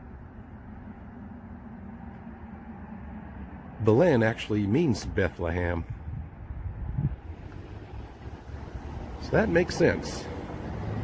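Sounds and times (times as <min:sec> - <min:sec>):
wind on microphone: 0:05.8 - 0:09.2.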